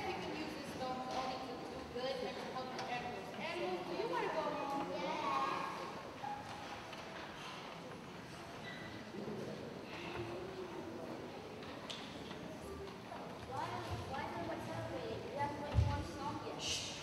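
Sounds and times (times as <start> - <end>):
indistinct voices speaking in hall: 0.0 - 17.0.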